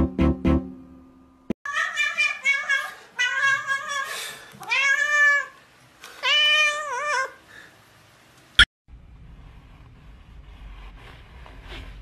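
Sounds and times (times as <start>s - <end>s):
cat meowing loudly: 1.7s - 5.5s.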